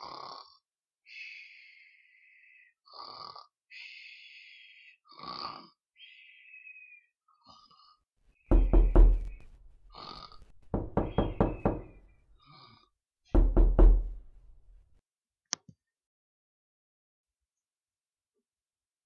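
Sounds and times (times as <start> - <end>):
heavy knocking: 8.5 - 12.0, 13.4 - 14.8.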